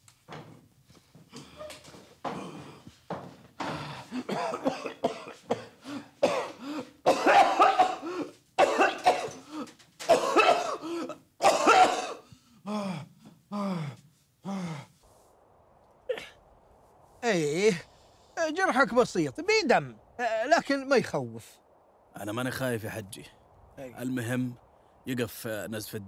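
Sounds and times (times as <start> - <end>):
man coughing hard: 3.6 - 13.0.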